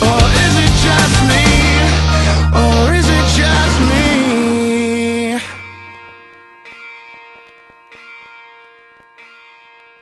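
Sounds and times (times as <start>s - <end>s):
bell-like chimes: 1.6s - 10.0s
steady ringing tone: 1.6s - 10.0s.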